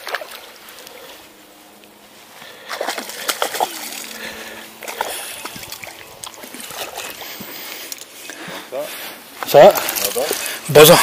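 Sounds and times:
water splashes: 0:00.0 - 0:01.2, 0:02.4 - 0:07.9
fish thrashing in water: 0:02.5 - 0:07.4.

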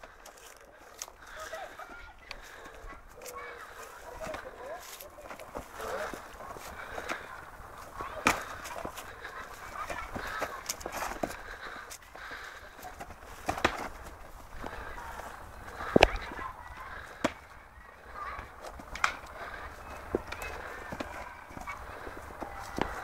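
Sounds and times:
murmur of background voices: 0:00.0 - 0:23.0.

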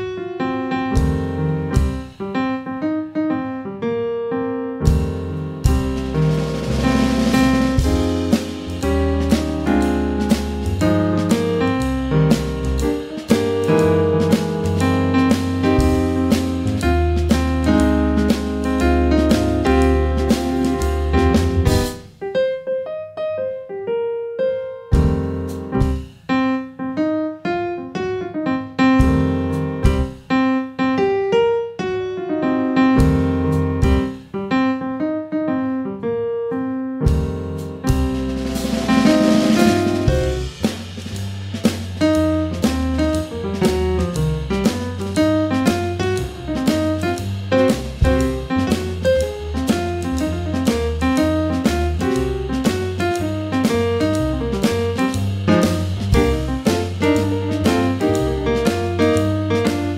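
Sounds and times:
keyboard jazz melody: 0:00.0 - 0:59.9
drum kit shuffle: 0:00.7 - 0:02.5, 0:04.8 - 0:22.4, 0:24.9 - 0:26.6, 0:28.8 - 0:30.6, 0:32.8 - 0:34.7, 0:37.0 - 0:59.9
sharp drum hits with low booms: 0:01.0 - 0:02.1, 0:04.9 - 0:22.2, 0:25.0 - 0:26.2, 0:29.0 - 0:30.2, 0:33.0 - 0:34.2, 0:37.1 - 0:59.9.

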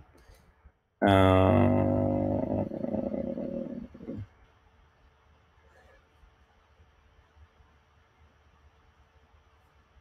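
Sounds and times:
man saying uhhh: 0:01.0 - 0:04.2.

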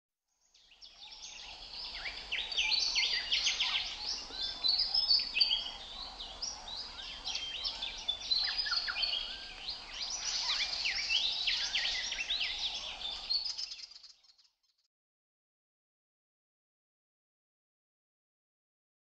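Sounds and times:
songbirds chirping and whistling: 0:00.5 - 0:14.5.

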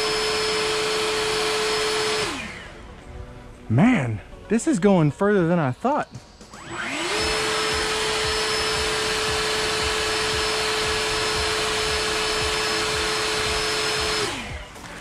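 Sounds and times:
leaf blower whining: 0:00.0 - 0:03.2, 0:05.9 - 0:15.0.

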